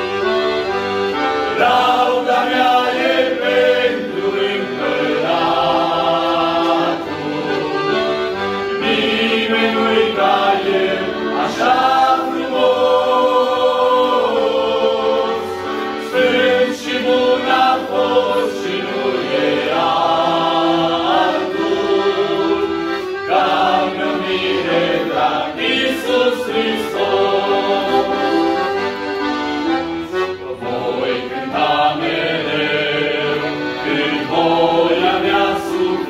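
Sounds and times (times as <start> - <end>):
accordion: 0.0 - 36.0
male choir singing a hymn: 1.2 - 29.2, 30.1 - 36.0.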